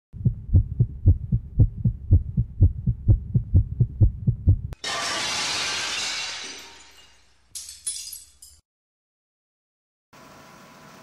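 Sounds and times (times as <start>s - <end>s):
heartbeat-like low thumps: 0.1s - 4.8s
faint steady hum: 0.2s - 4.7s.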